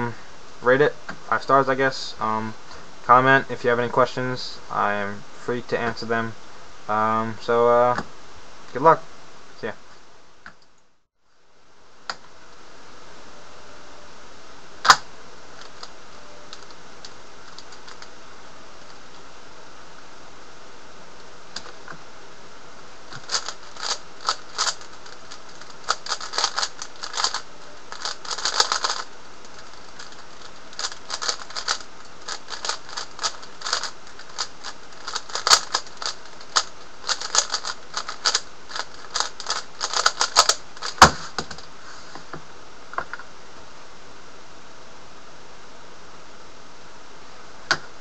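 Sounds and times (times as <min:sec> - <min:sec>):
steady hiss: 0:00.0 - 0:10.2, 0:11.4 - 0:48.0
puzzle cube plastic clicks: 0:23.1 - 0:41.1.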